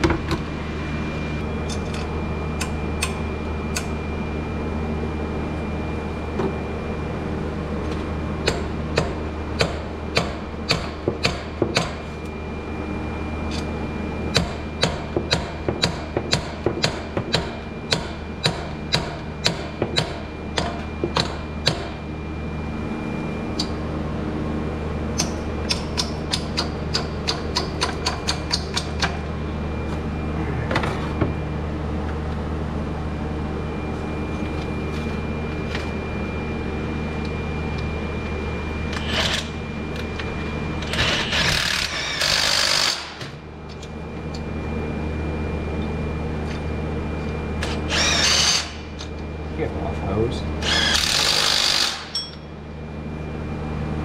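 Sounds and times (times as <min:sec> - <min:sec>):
steady hum: 0:00.0 - 0:54.0.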